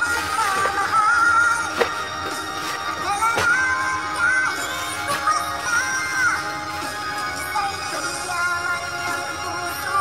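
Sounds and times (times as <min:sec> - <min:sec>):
person singing a song: 0:00.0 - 0:10.0.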